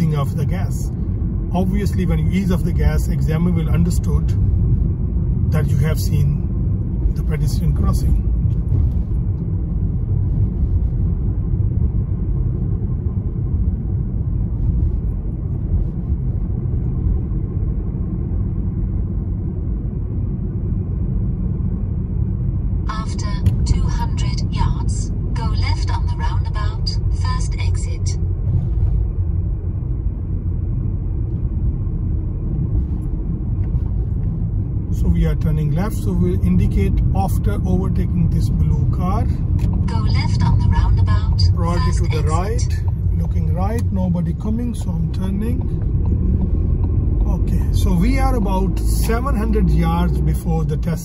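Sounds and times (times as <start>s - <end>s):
car cabin road and engine rumble: 0.0s - 51.0s
person speaking: 37.6s - 45.8s.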